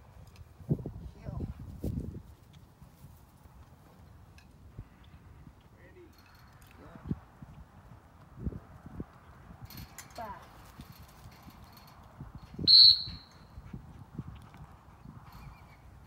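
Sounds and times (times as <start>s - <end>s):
dog whistle blast: 12.7s - 13.3s.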